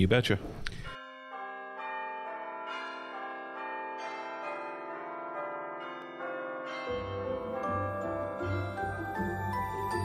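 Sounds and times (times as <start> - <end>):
bells ringing: 1.0 - 10.0.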